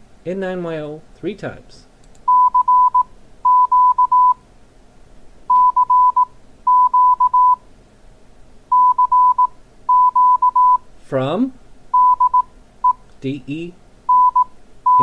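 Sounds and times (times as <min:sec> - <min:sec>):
morse code tone: 0:02.3 - 0:04.4, 0:05.5 - 0:07.6, 0:08.7 - 0:10.8, 0:12.0 - 0:12.4, 0:14.1 - 0:15.0.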